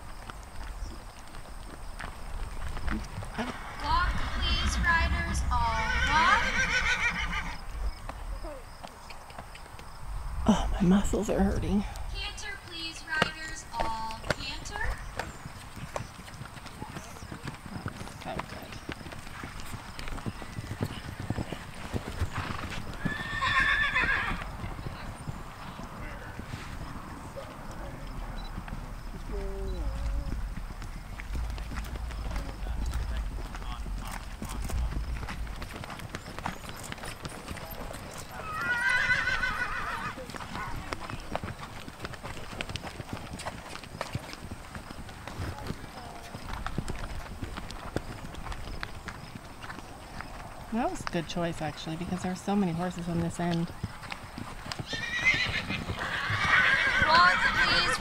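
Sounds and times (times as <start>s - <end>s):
hoofbeats on sand: 0.0s - 10.6s, 11.2s - 58.0s
low rumble: 3.2s - 6.6s, 9.9s - 12.4s, 28.2s - 36.5s
horse whinnying: 3.3s - 7.8s, 22.3s - 24.6s, 38.2s - 40.7s, 54.8s - 58.0s.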